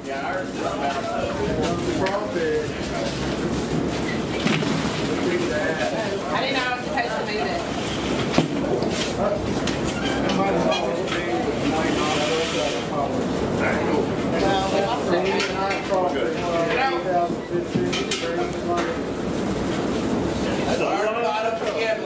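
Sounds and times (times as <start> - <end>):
people talking: 0.0 - 19.1, 20.4 - 22.0.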